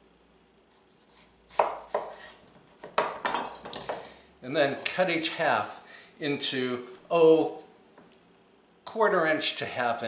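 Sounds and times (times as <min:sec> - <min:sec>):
knife cutting on wooden board: 0:00.7 - 0:03.1.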